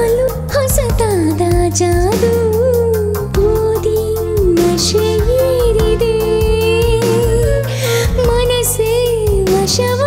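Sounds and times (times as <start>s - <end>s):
bass and steady beat: 0.0s - 10.0s.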